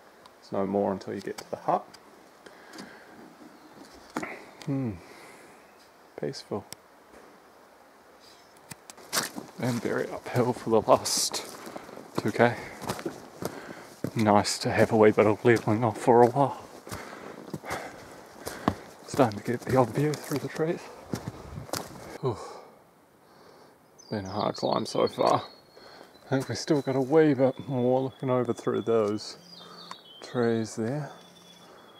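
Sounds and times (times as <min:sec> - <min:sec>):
faint steady hiss: 0:00.0 - 0:31.9
person saying ooh: 0:04.7 - 0:05.0
footsteps on dirt track: 0:08.9 - 0:22.2.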